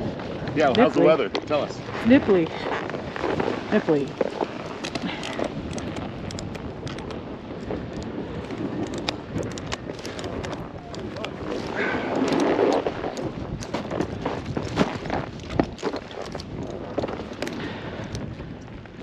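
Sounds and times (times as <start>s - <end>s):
snowboard scraping on snow: 0.0s - 4.8s
wind buffeting microphone: 0.0s - 19.0s.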